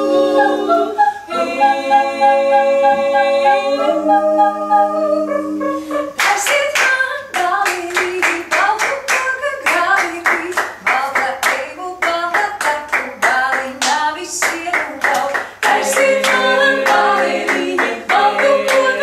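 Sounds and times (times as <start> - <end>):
women singing a cappella: 0.0 - 19.0
women clapping rhythm: 6.2 - 19.0.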